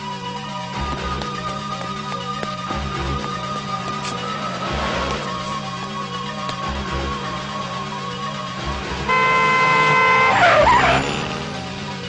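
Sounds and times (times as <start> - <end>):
film music: 0.0 - 12.0
car horn blast: 9.0 - 11.2
tyres screeching: 9.1 - 11.5.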